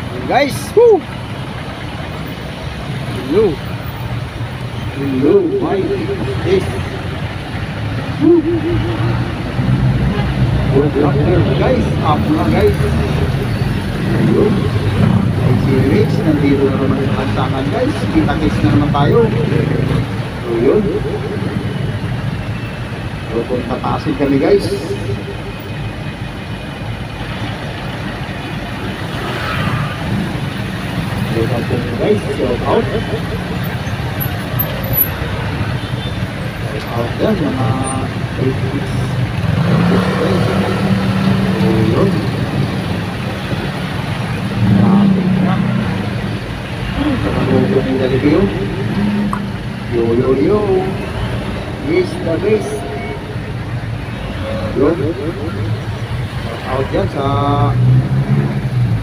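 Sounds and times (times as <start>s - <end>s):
voices talking: 0.0s - 57.8s
vehicle engine low rumble: 0.0s - 59.0s.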